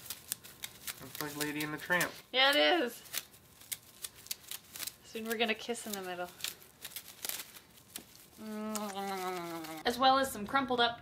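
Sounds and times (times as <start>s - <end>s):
snake skin crinkling: 0.0s - 10.0s.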